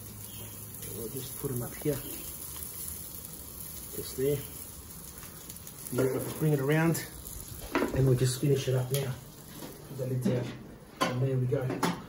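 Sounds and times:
food sizzling on grill plate: 0:00.0 - 0:10.3.

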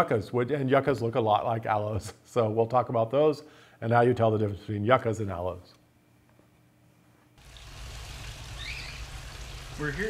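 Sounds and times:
fountain water trickling: 0:07.4 - 0:10.0.

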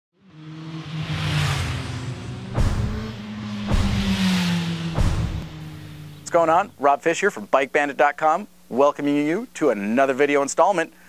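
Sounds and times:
vehicle engine sound effect: 0:00.2 - 0:06.8
whooshes: 0:01.2 - 0:06.2
sharp hits: 0:01.5 - 0:06.2.

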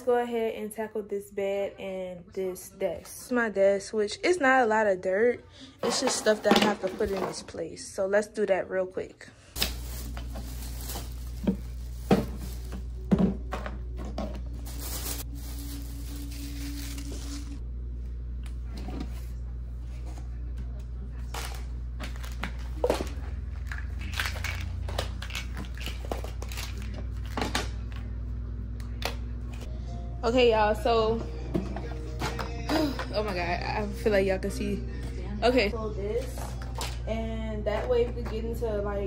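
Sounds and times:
steady low hum: 0:09.5 - 0:39.0
plastic crinkling: 0:09.6 - 0:13.1, 0:14.3 - 0:17.6.

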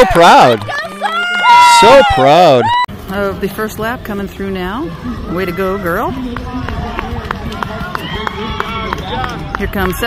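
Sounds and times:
spectators' voices: 0:00.0 - 0:10.0.

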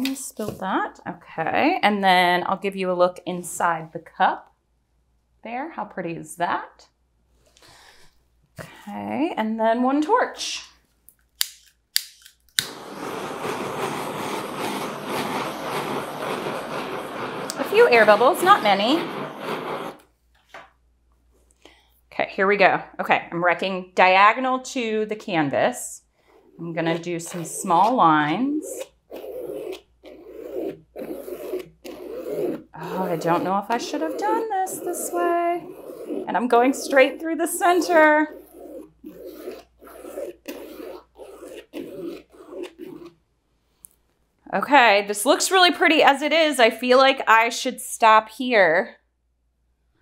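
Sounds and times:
stick scraping wet paint: 0:12.6 - 0:20.1, 0:26.2 - 0:43.2.

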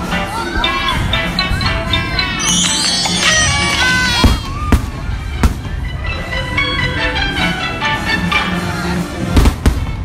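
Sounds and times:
music with held notes: 0:00.0 - 0:09.4.

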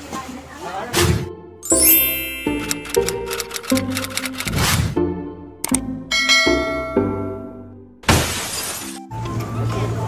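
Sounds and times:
ringing chime tone: 0:01.6 - 0:03.6.

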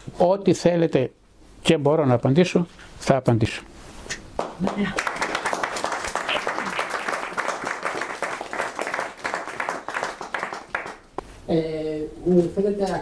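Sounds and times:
small audience applauding: 0:04.4 - 0:11.2.

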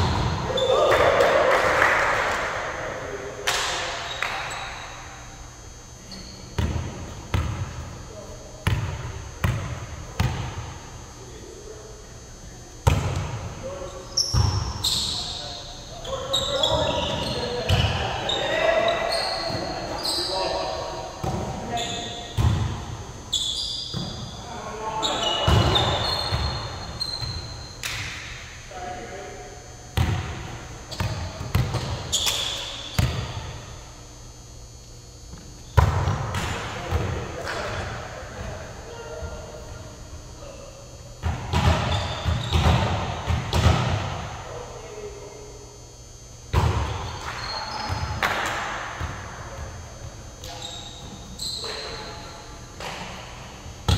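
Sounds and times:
sneakers squeaking: 0:00.0 - 0:01.3, 0:03.5 - 0:11.2, 0:12.2 - 0:28.4, 0:29.5 - 0:44.2, 0:45.8 - 0:53.9
players calling out: 0:00.1 - 0:05.0, 0:13.6 - 0:27.5
volleyball slaps: 0:03.4 - 0:04.5, 0:12.8 - 0:13.4, 0:27.8 - 0:28.4, 0:41.2 - 0:44.2, 0:46.5 - 0:47.4, 0:48.1 - 0:49.2.

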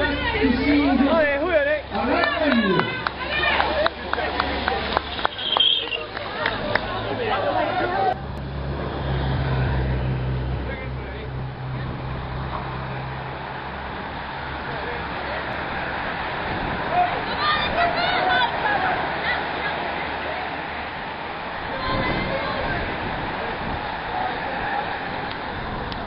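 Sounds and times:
bicycle tyres rushing past: 0:00.0 - 0:26.0
motor vehicle engine humming: 0:00.0 - 0:26.0.

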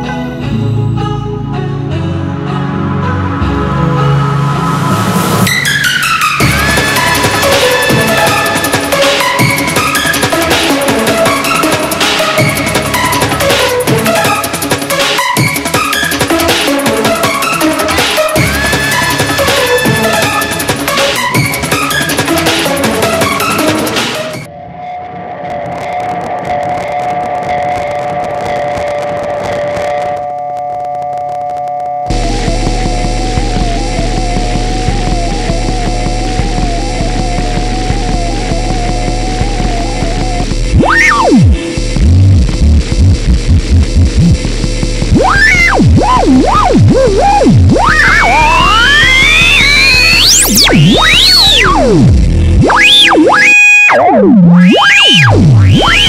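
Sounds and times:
synthesizer drone tones: 0:02.0 - 0:16.2, 0:32.1 - 0:56.0
crackling noise: 0:19.1 - 0:56.0
fast ticking pulse: 0:32.1 - 0:56.0.

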